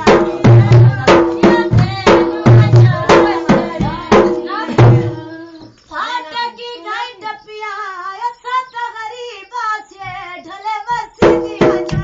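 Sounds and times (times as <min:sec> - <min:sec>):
woman singing ornamented melody: 0:00.0 - 0:12.0.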